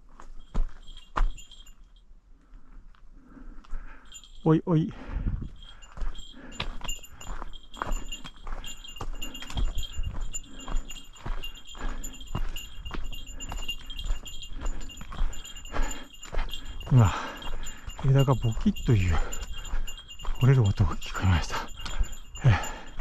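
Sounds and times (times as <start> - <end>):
bell jingling: 0.0 - 2.1, 3.2 - 23.0.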